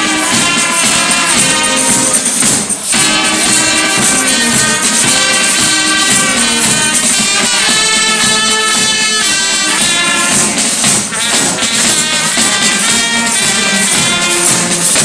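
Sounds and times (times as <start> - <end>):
carnival band playing: 0.0 - 15.0
tambourine jingling: 0.0 - 15.0.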